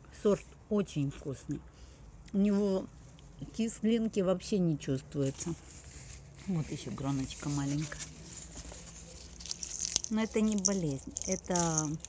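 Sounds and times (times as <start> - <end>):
leaves rustling in hand: 5.2 - 12.0.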